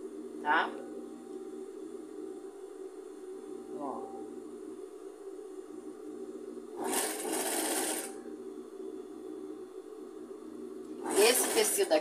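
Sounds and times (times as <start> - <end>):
steady low hum: 0.0 - 12.0
sewing machine stitching: 6.8 - 8.1, 11.0 - 11.9.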